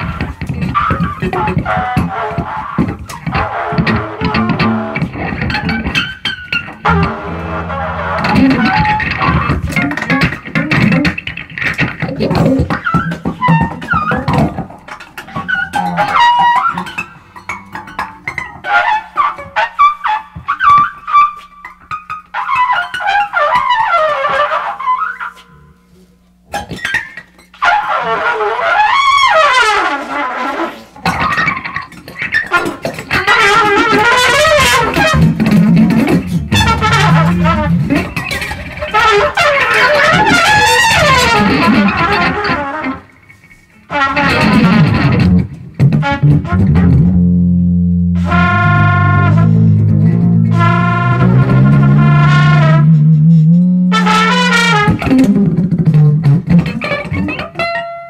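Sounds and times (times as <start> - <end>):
guitar: 0.0 - 58.0
trumpet sliding lines: 6.8 - 10.2, 12.9 - 21.5, 32.6 - 45.3, 48.2 - 55.1.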